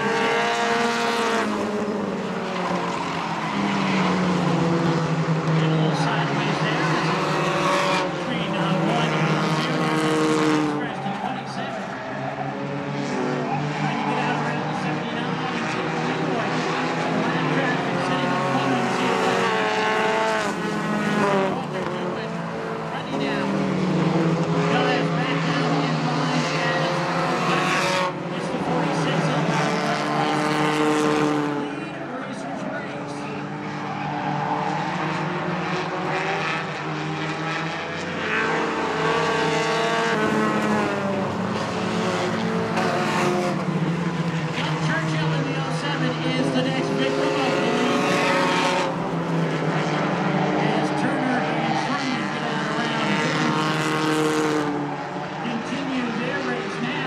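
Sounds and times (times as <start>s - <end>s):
racing car engines: 0.0s - 57.0s.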